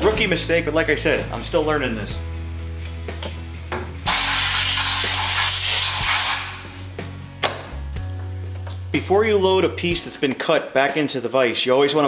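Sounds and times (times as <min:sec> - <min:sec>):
loud rushing hiss: 0:04.1 - 0:06.7.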